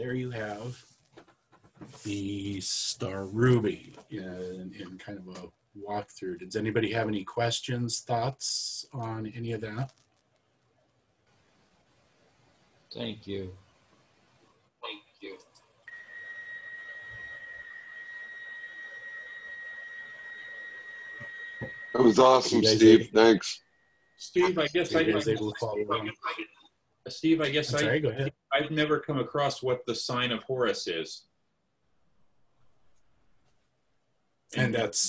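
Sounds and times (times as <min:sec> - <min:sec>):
low even hiss: 0:00.0 - 0:01.0, 0:01.8 - 0:10.0, 0:12.9 - 0:14.2, 0:27.1 - 0:31.2, 0:34.6 - 0:35.0
high-pitched electronic whine: 0:15.9 - 0:23.5, 0:24.2 - 0:26.4.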